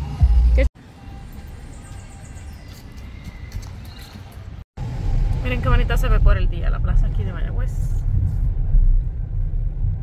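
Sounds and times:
footsteps on pavement: 2.0s - 4.6s
car rumble: 4.2s - 10.0s
low outdoor rumble: 4.8s - 10.0s.

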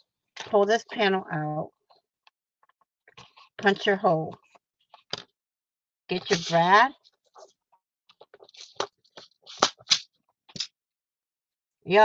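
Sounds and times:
card stock rustling: 6.2s - 6.6s.

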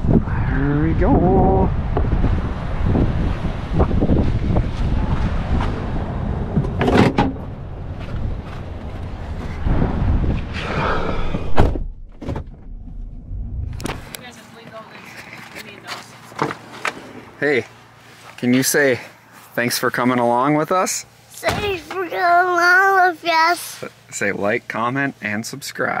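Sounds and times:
low microphone rumble: 0.0s - 14.2s.

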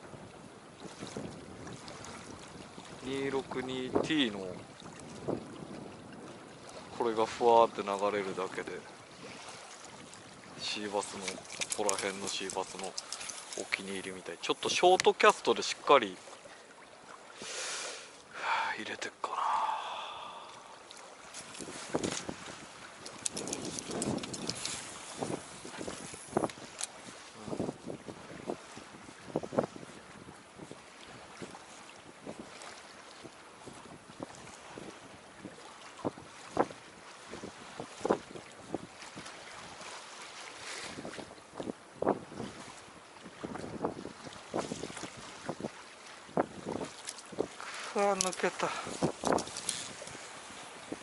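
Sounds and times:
wind on microphone: 0.0s - 7.8s, 8.8s - 15.1s, 19.3s - 51.0s
small waves lapping against boat hull: 0.0s - 51.0s.

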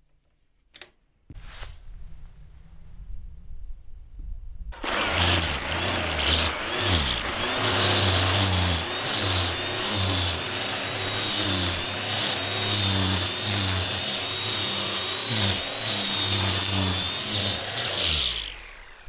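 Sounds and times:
string trimmer whining: 4.8s - 19.0s
trimmer swishing through grass: 4.8s - 19.0s.

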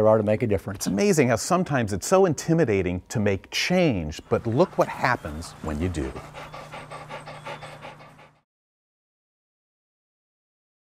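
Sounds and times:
dog panting quickly: 4.3s - 8.5s.

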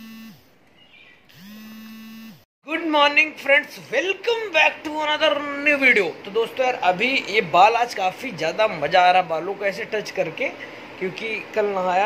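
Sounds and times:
buzzing hum: 0.0s - 0.6s, 1.2s - 2.5s.

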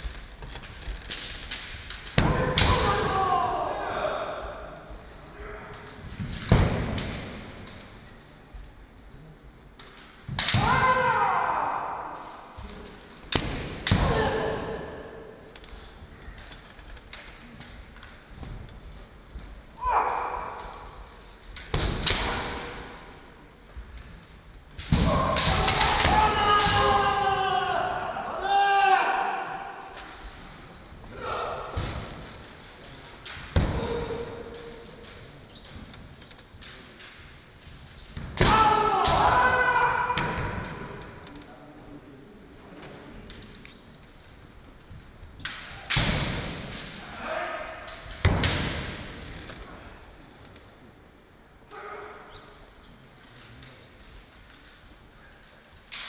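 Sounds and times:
bamboo swords striking: 0.7s - 3.4s, 10.2s - 15.3s, 19.8s - 23.3s, 24.8s - 27.4s, 33.1s - 41.2s, 45.4s - 49.2s.

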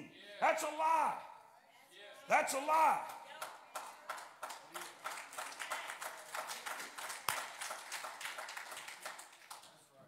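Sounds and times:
congregation clapping: 3.0s - 9.9s.

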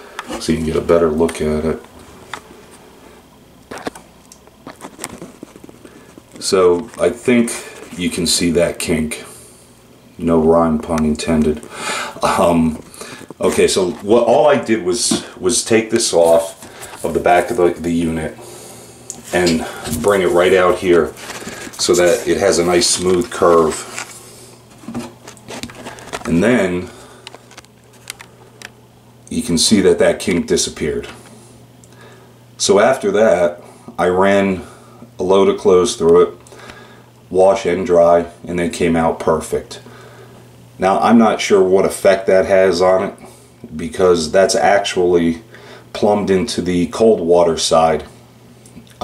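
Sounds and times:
low steady hum: 0.0s - 49.0s.

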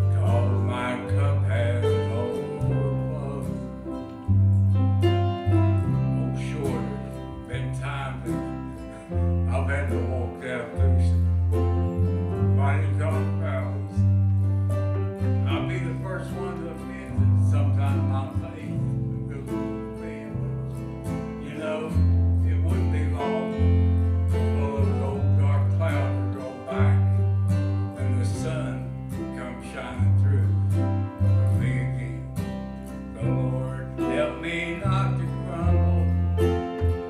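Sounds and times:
acoustic guitar strummed and picked: 0.0s - 37.0s
steady bass line: 0.0s - 37.0s.

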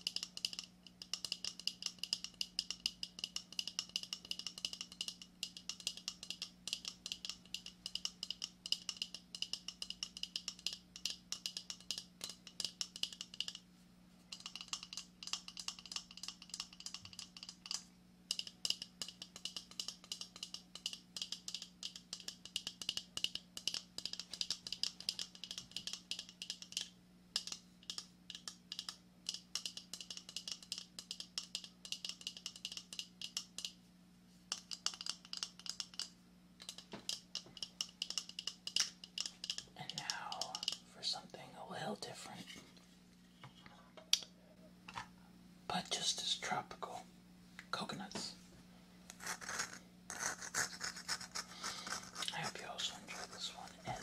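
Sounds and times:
fingernails tapping on shell: 0.0s - 13.6s, 14.3s - 33.8s, 34.5s - 40.8s.

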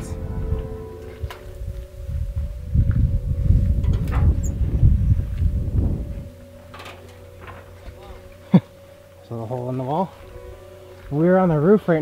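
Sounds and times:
low rumbling microphone noise: 0.0s - 9.0s
faint background music: 0.0s - 12.0s.

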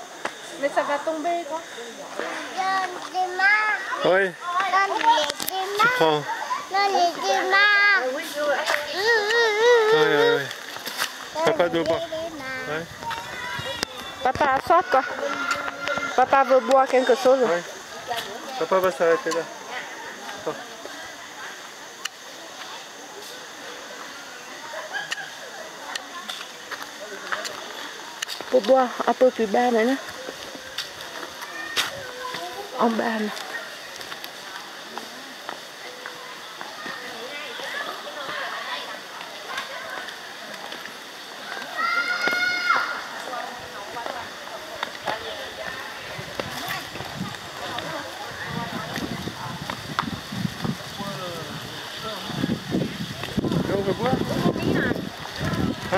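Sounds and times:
children's voices: 2.1s - 18.7s, 30.3s - 40.8s, 41.4s - 49.6s, 52.9s - 55.9s
child's high-pitched shout: 8.9s - 10.5s, 31.5s - 32.7s, 41.6s - 43.0s.

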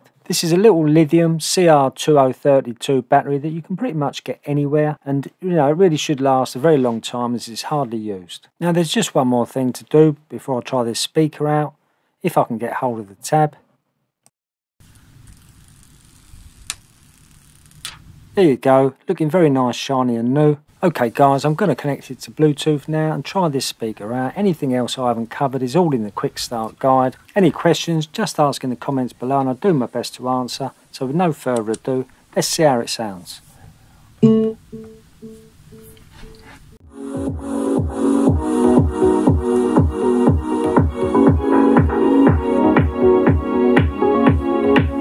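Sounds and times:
speaker pairing tone: 34.2s - 36.6s.

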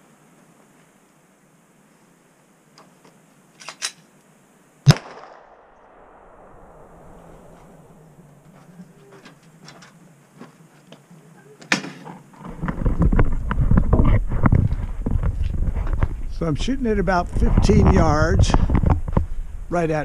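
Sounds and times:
handgun shot with echo: 4.9s - 6.9s
camera handling rumble: 12.5s - 16.3s.

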